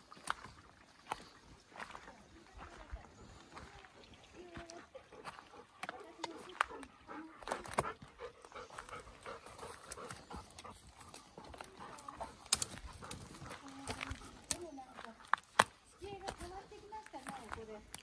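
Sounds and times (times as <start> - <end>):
twigs snapping underfoot: 11.9 - 16.4.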